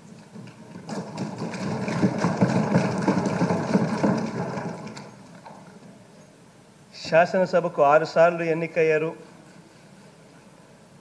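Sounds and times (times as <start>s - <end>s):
people thumping wooden desks: 0.2s - 5.7s.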